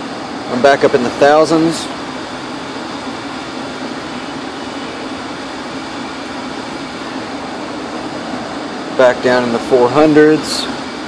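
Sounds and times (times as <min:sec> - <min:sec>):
steady background hum and hiss: 0:00.0 - 0:11.0.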